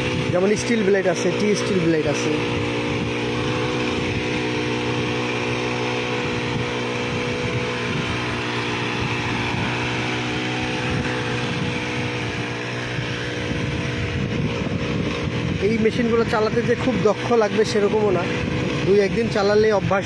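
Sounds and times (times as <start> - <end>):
brush cutter engine running: 0.0 - 20.0
weeder head digging soil: 0.0 - 20.0.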